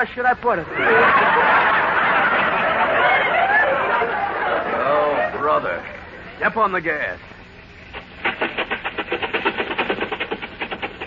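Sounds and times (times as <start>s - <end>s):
old car engine chugging: 7.9s - 11.0s.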